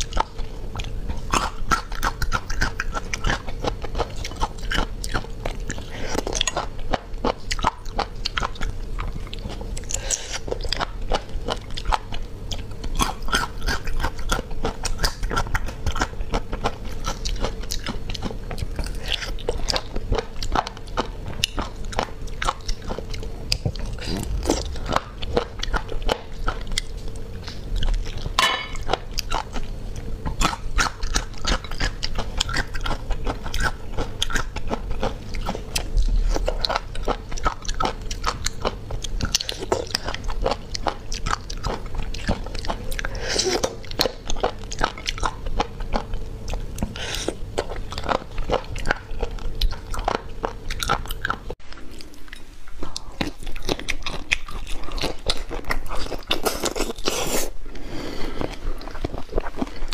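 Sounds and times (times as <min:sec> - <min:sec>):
chewing: 0:00.0 - 0:59.9.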